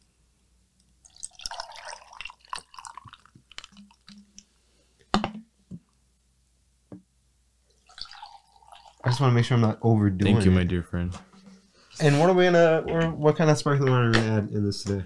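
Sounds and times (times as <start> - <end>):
coffee pouring over ice: 1.0 - 4.2, 7.8 - 9.3.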